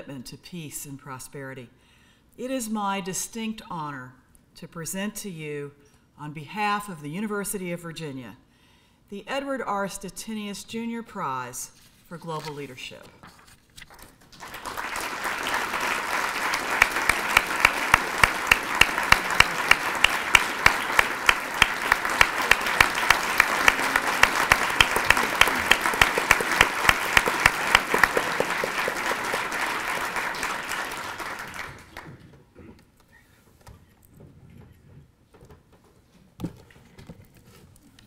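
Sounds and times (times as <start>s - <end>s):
audience applauding: 14.3s - 32.2s
sharp close hand claps: 14.4s - 32.1s.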